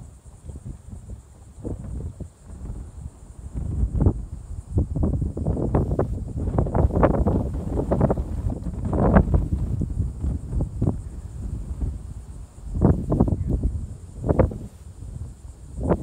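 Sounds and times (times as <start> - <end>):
faint steady high hiss: 0.0 - 16.0
wind buffeting microphone: 0.0 - 16.0.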